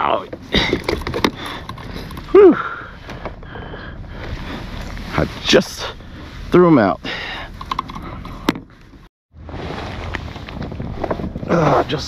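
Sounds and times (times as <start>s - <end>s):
wind on microphone: 9.4s - 12.0s.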